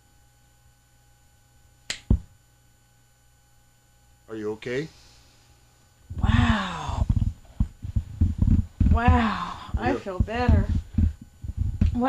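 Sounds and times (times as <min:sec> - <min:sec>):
finger snap: 0:01.8 - 0:02.3
heavy low thump: 0:06.1 - 0:12.0.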